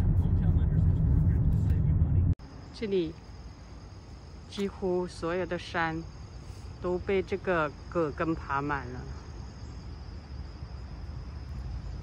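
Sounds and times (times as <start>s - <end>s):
high-pitched insect chorus: 2.4s - 12.0s.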